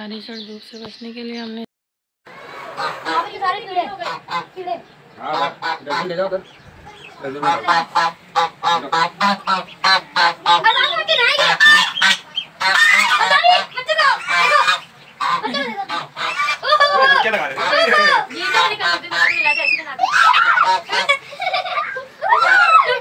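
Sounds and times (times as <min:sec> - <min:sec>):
geese honking: 0:02.3 - 0:23.0.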